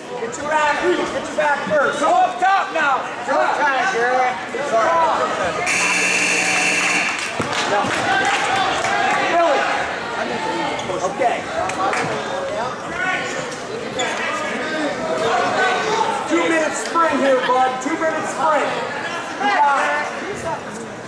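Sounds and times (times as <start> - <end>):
crowd chatter and shouts: 0.0 - 21.0
scoreboard buzzer: 5.6 - 7.3.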